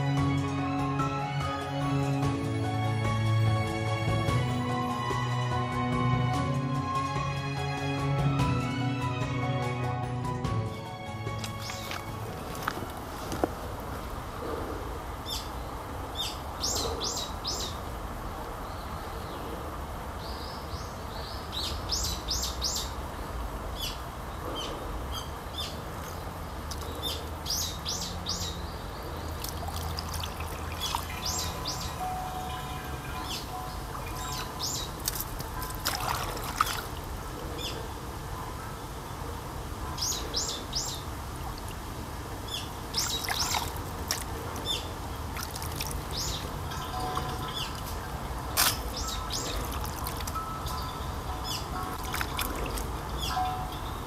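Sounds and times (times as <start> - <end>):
small birds chirping: 11.4 - 13.5, 14.5 - 17.9, 18.6 - 54.0
trickle of water: 11.4 - 14.0, 29.2 - 31.8, 33.8 - 37.2, 41.3 - 42.0, 42.9 - 50.5, 51.9 - 53.0.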